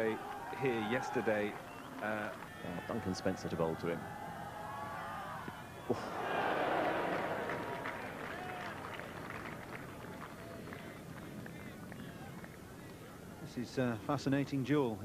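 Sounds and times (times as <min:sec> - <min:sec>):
crowd cheering and applauding: 0:05.9 - 0:10.9.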